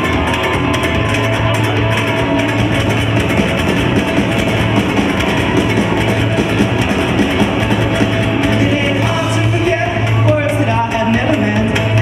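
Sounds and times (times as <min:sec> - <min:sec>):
acoustic guitar strumming: 0:00.0 - 0:11.4
drum kit: 0:00.0 - 0:12.0
live band playing loud: 0:00.0 - 0:12.0.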